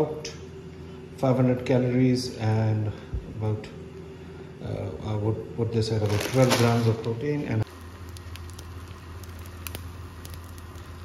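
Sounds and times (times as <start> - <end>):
eggs sizzling in a pan: 7.6 - 11.0.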